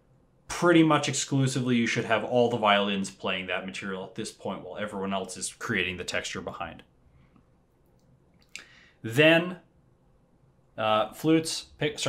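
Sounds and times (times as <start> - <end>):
soft intake of breath: 8.6 - 9.0.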